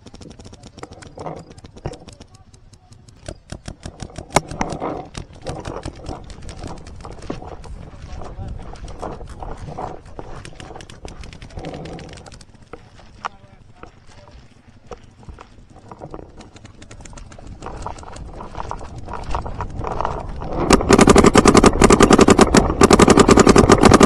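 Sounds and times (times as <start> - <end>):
paintball marker rapid firing: 0.0 - 12.8, 16.0 - 24.0
footsteps running through grass: 5.0 - 22.5.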